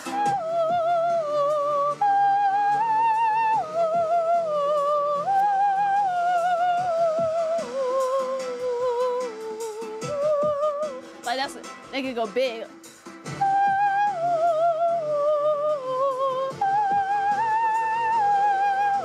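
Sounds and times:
woman singing with vibrato: 0.0s - 11.6s, 13.3s - 19.0s.

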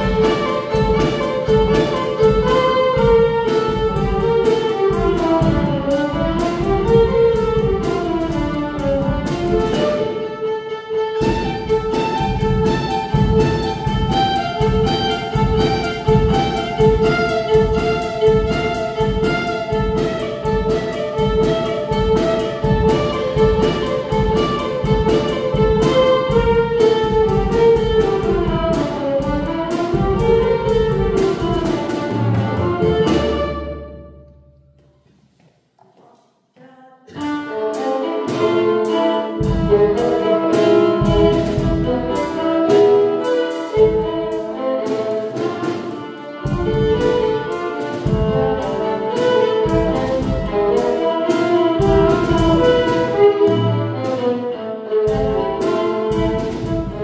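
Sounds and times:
drum kit beat: 0.0s - 10.2s, 11.0s - 35.4s, 37.1s - 54.4s, 55.1s - 57.0s
violins playing dance music: 0.0s - 34.2s, 36.6s - 57.0s.

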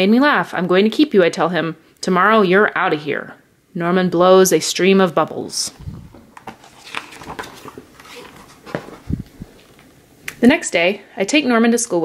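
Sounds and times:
paper page turning: 5.8s - 9.9s.

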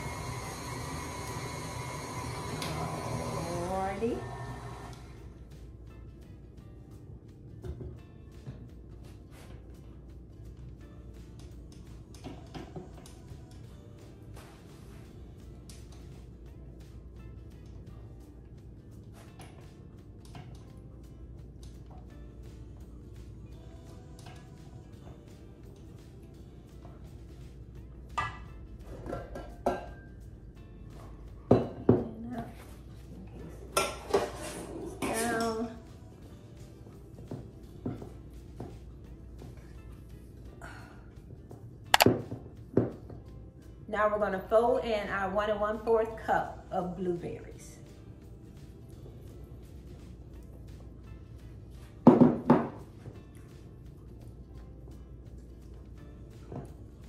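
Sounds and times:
soft background music: 0.0s - 57.0s.

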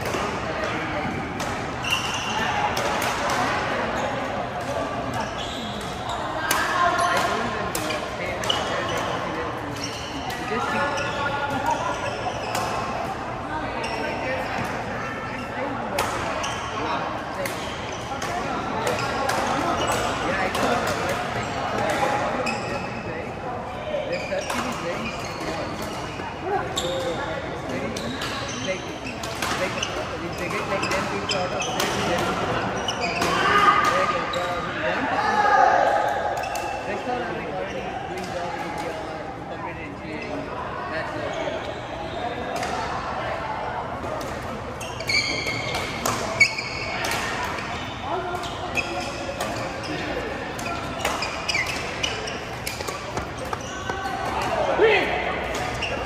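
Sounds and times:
chatter of voices: 0.0s - 56.0s.

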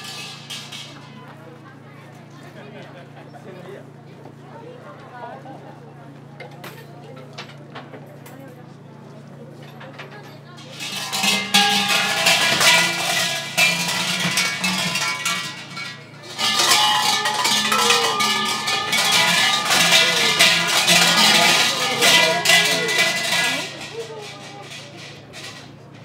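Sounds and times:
large bells jangling: 0.0s - 1.0s, 10.6s - 26.0s.

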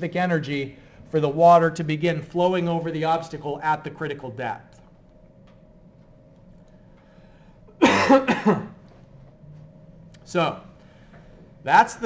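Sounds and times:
faint room hum: 0.0s - 12.0s
man coughing: 7.8s - 8.8s.

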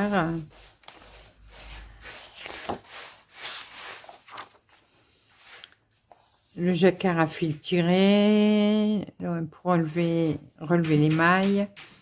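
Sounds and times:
paper page rustling: 0.3s - 6.7s
sharp paper crinkle: 2.0s - 5.6s.

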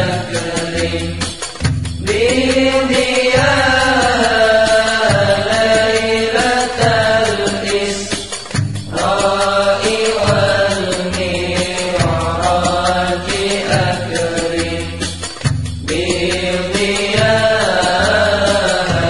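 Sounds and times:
chanted devotional vocals: 0.0s - 19.0s
instrumental accompaniment: 0.0s - 19.0s
repeating low bass notes: 8.5s - 19.0s.

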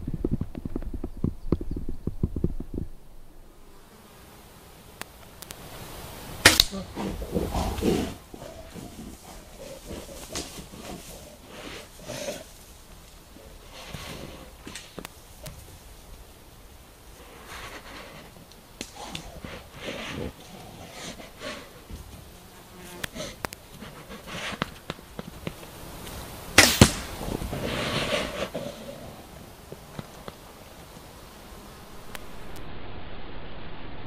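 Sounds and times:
insects buzzing: 1.0s - 32.6s
low rough sounds: 31.6s - 34.0s.

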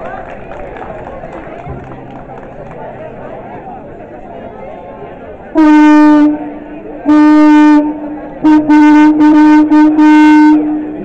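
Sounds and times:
crowd murmur: 0.0s - 11.0s
loud horn blasts: 5.5s - 11.0s.

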